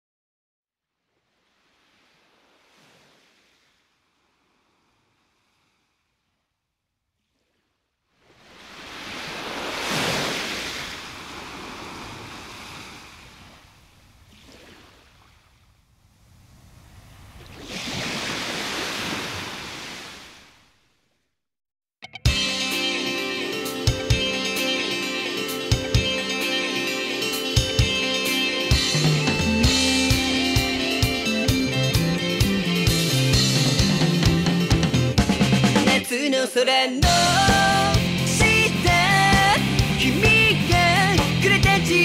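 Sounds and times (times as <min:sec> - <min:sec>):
sea waves washing in: 0:01.0 - 0:06.3, 0:07.2 - 0:20.9.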